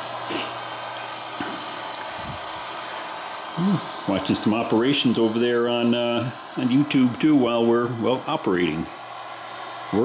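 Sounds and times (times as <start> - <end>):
model locomotive running hum: 0.0 - 10.0.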